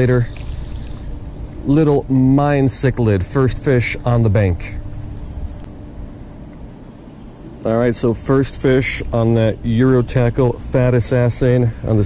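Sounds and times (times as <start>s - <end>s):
insect chirring: 0.0s - 12.0s
low rumbling: 0.0s - 12.0s.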